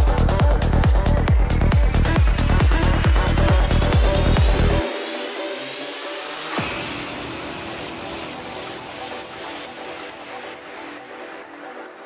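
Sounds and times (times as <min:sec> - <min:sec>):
psytrance electronic music: 0:00.0 - 0:12.0.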